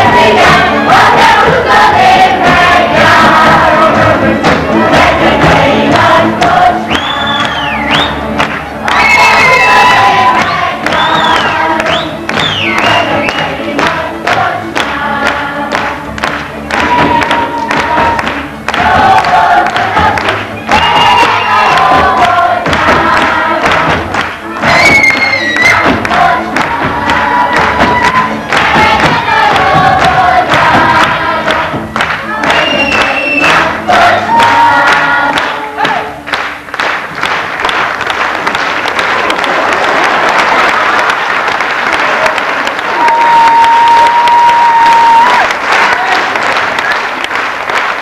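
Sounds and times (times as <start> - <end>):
crowd singing along: 0.0 - 8.1, 9.7 - 36.2.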